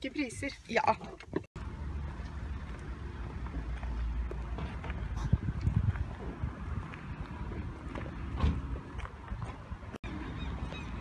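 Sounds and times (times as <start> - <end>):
footsteps on pavement: 1.5 - 11.0
wind buffeting microphone: 3.4 - 11.0.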